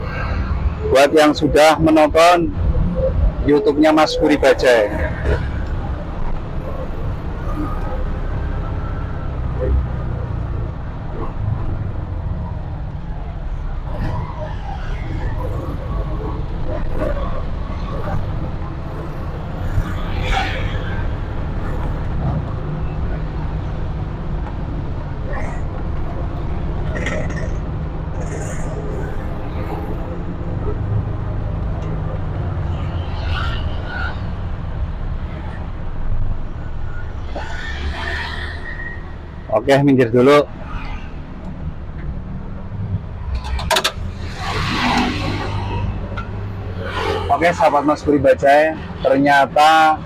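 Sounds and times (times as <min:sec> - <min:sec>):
rushing noise: 0:00.0 - 0:03.2, 0:03.8 - 0:49.1
road and traffic noise: 0:00.0 - 0:50.0.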